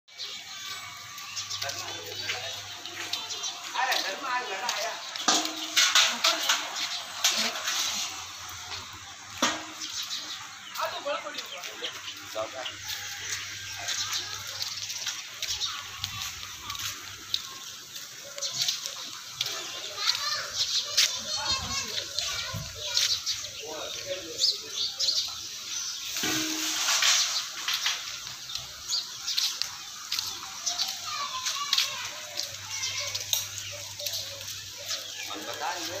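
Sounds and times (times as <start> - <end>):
adults and children talking: 0.0 - 36.0.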